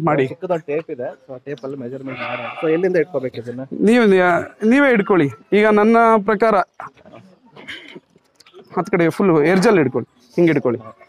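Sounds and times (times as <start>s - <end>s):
goat bleating: 2.0s - 2.9s.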